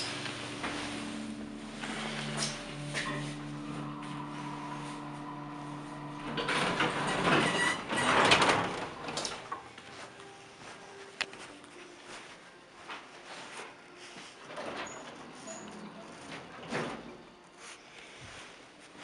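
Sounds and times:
elevator pump motor hum: 0.0 - 10.1
elevator doors rattling open: 0.8 - 9.7, 14.5 - 17.2.

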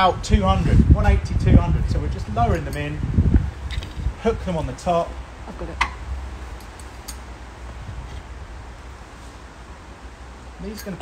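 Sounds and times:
low background rumble: 0.0 - 11.0
metal hooks clinking: 10.7 - 11.0.

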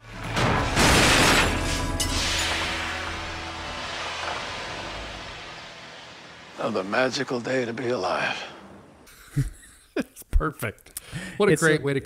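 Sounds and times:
film score music: 0.0 - 9.0
car crash hiss and rumble: 0.2 - 9.0.

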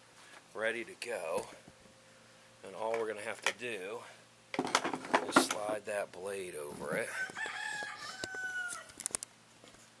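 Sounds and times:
rooster crowing: 7.0 - 9.1.

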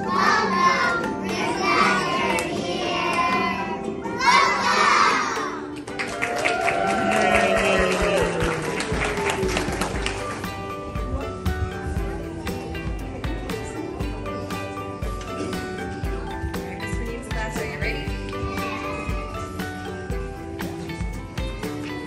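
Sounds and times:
children singing: 0.0 - 5.6
backing track music: 0.0 - 22.0.

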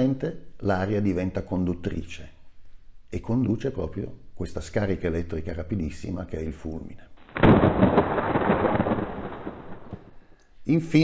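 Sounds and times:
thunderclap with rumble: 7.3 - 10.1.

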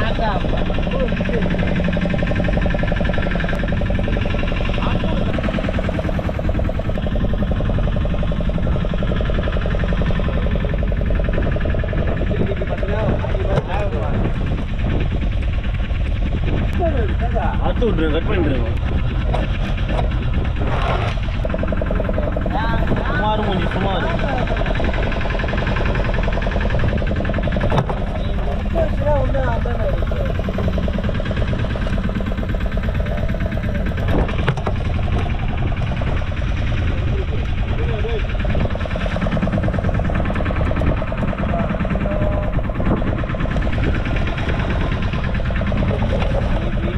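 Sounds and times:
boat engine running: 0.0 - 46.9.

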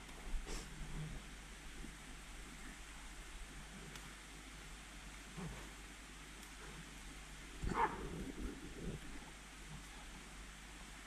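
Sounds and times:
dog barking: 7.7 - 8.2.

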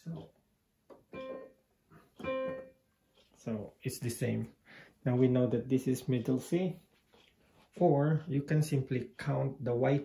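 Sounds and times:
digital piano notes: 0.9 - 2.9.

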